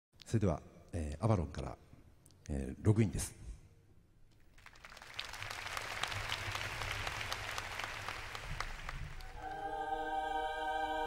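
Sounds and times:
audience applauding: 4.4s - 9.8s
orchestra and choir chord: 9.3s - 11.0s.

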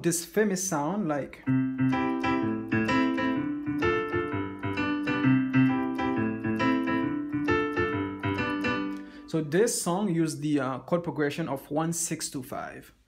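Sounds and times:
digital piano playing: 1.0s - 9.7s.

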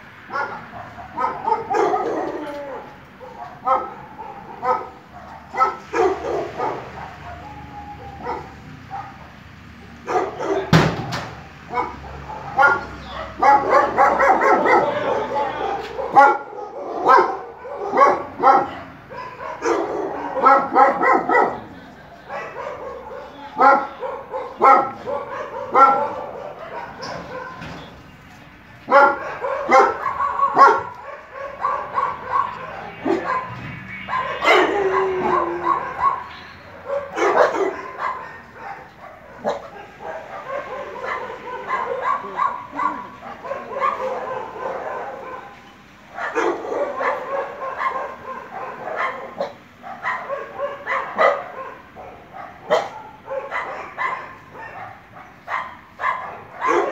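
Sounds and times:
dog barking: 0.2s - 11.0s, 11.7s - 27.9s, 28.8s - 56.9s.

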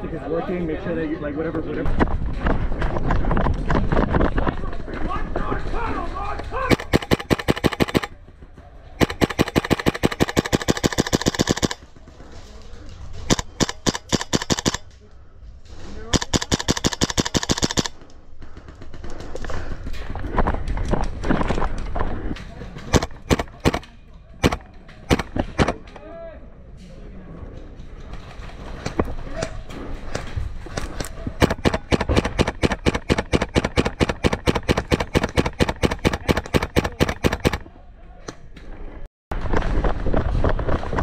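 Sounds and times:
airsoft rifle firing bursts: 6.7s - 8.3s, 9.0s - 11.9s, 13.3s - 14.8s, 16.1s - 18.0s, 22.9s - 23.8s, 24.4s - 25.8s, 31.4s - 37.6s.

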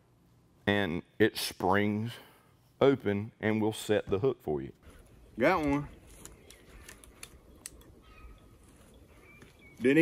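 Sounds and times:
faint plastic clicks: 5.6s - 7.9s.

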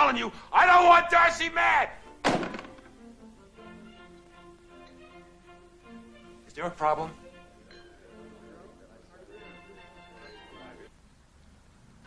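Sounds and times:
soft background music: 0.0s - 10.9s
telephone receiver hung up: 2.2s - 3.0s.

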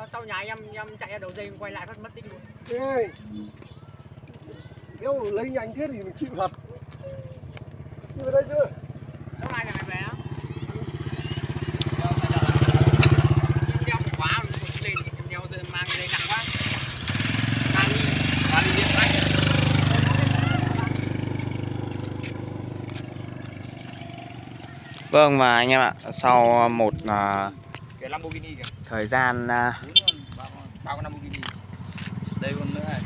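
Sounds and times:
motorbikes passing: 0.0s - 33.0s.

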